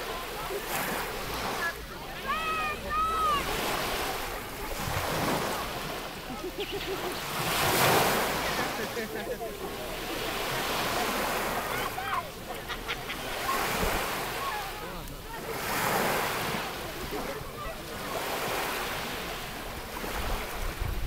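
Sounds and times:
small waves lapping: 0.0s - 21.0s
wind buffeting microphone: 20.1s - 21.0s.

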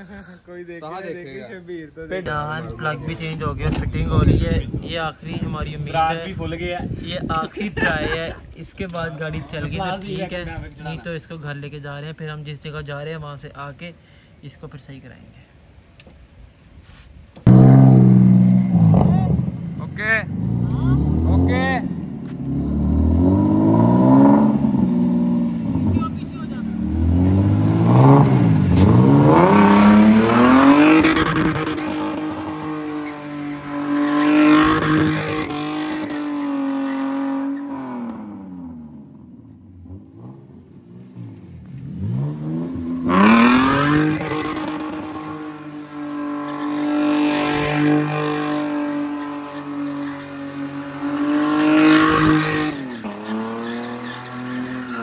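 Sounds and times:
rotary engine revving hard: 20.3s - 26.0s, 26.6s - 38.9s, 39.8s - 55.0s.

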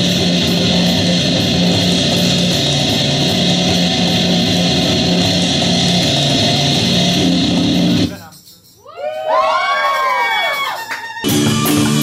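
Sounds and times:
rock band with electric guitars: 0.0s - 8.1s, 11.2s - 12.0s.

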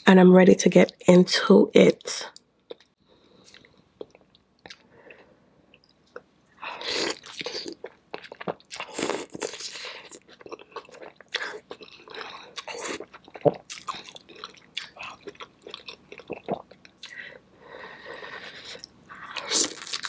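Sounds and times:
person chewing wet food: 2.7s - 20.0s.

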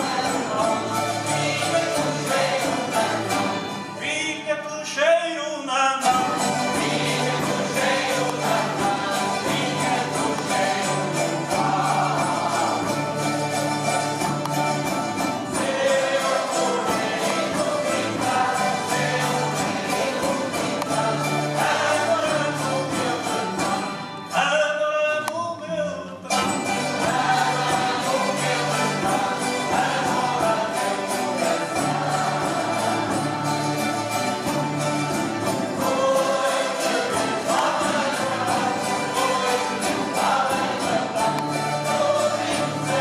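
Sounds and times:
group of voices singing: 0.0s - 4.5s, 6.0s - 24.6s, 26.2s - 43.0s
strummed guitars: 0.0s - 43.0s.

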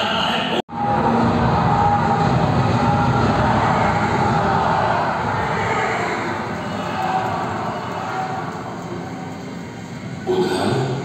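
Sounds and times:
loud noisy sound effect: 0.4s - 11.0s.

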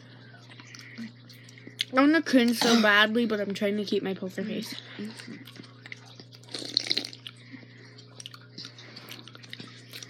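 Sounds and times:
steady low hum: 0.0s - 10.0s
slurping and swallowing: 5.2s - 10.0s.

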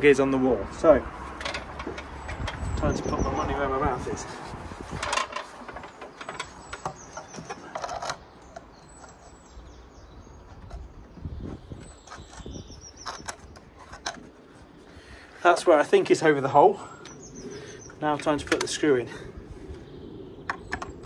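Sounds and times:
faint birds chirping: 0.0s - 21.0s.

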